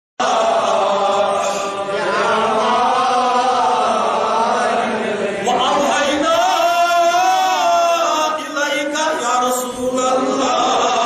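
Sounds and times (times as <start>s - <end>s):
man chanting into a microphone: 5.4s - 11.0s.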